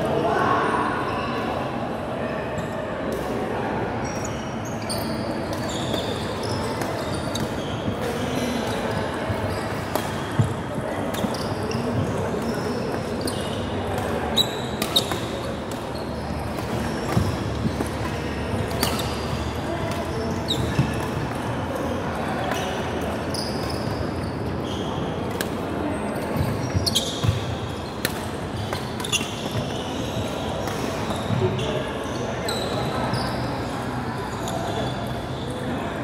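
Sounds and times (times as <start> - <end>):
murmur of voices: 0.0 - 36.0
shoes squeaking on wooden floor: 26.3 - 27.5.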